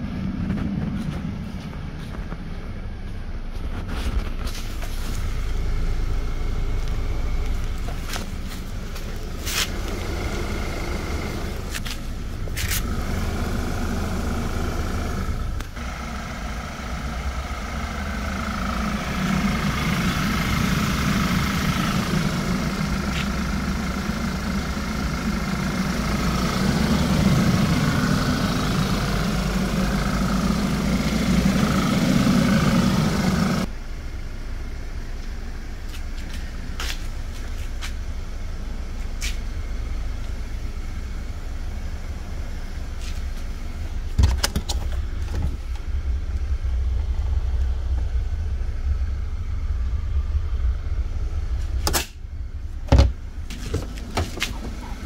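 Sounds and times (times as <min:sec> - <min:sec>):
car engine running with whine: 0:00.0 - 0:55.0
steady low rumble: 0:00.0 - 0:55.0.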